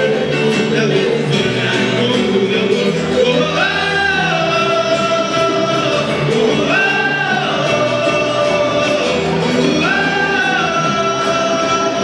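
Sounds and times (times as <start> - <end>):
acoustic guitars: 0.0 - 12.0
man singing long notes: 0.0 - 12.0.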